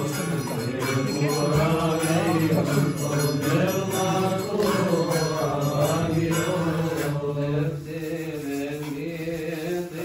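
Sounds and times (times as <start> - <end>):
men chanting a hymn in unison: 0.0 - 10.0.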